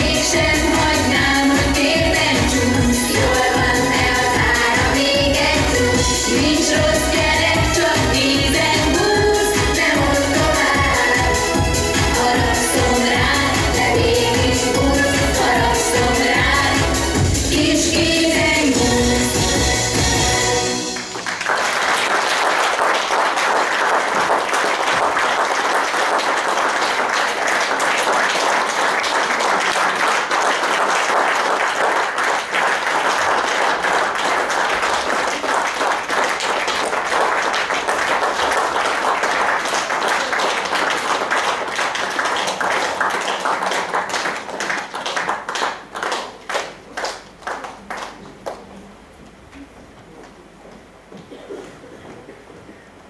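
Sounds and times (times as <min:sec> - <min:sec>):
audience applauding: 0:20.8 - 0:48.9.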